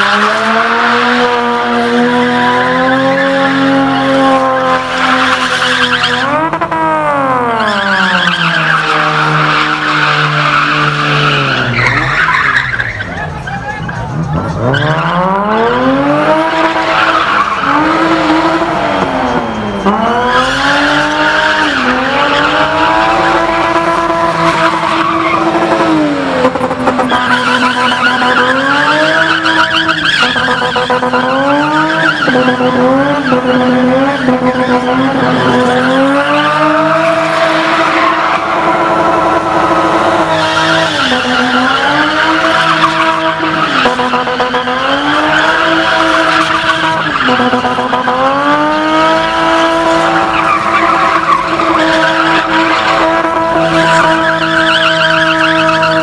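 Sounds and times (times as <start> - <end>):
car engine revving high: 0.0 - 13.3, 13.9 - 56.0
tyres screeching: 7.4 - 56.0.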